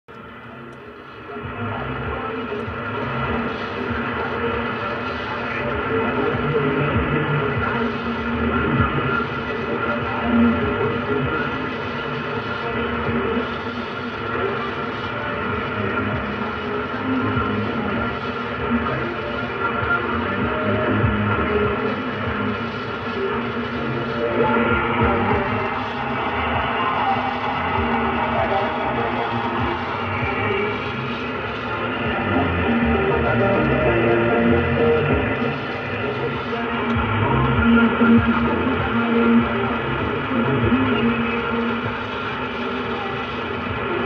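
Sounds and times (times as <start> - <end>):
faint muffled radio broadcast: 0.0 - 44.0
radio static hiss: 0.1 - 44.0.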